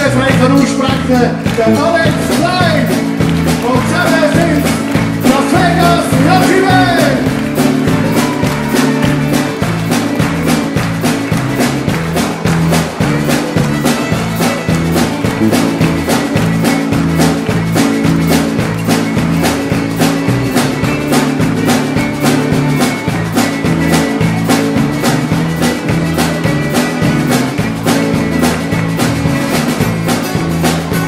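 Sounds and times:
acoustic guitars: 0.0 - 31.0
drum kit steady beat: 0.0 - 31.0
fiddle: 0.0 - 31.0.

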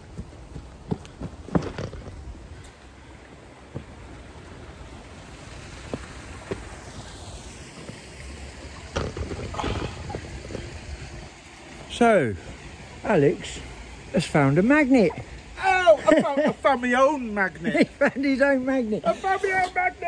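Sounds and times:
outdoor background noise: 0.0 - 20.0.

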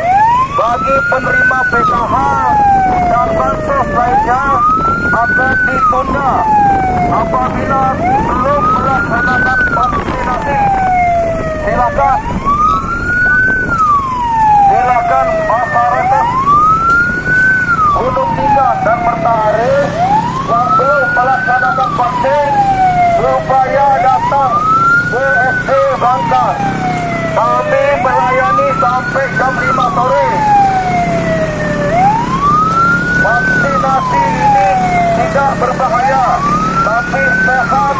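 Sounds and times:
motorcycle rumble: 0.0 - 37.9
police siren wailing: 0.0 - 37.9.

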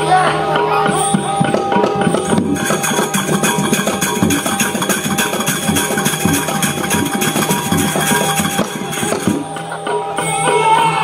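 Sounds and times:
gamelan music: 0.0 - 11.0
drums: 0.4 - 11.0
metal cymbals: 0.9 - 10.4.

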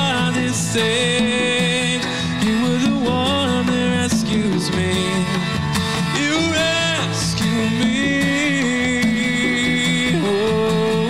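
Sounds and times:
acoustic guitar strumming: 0.0 - 11.0
conga drums: 0.0 - 11.0
man singing: 0.0 - 11.0.

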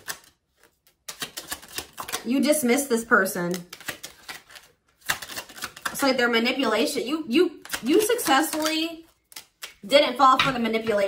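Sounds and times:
cards being shuffled: 0.0 - 2.6, 3.2 - 6.1, 7.6 - 9.9.

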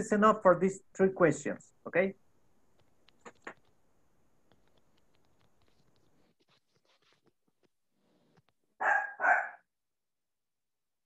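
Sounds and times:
dog barking: 8.8 - 9.7.

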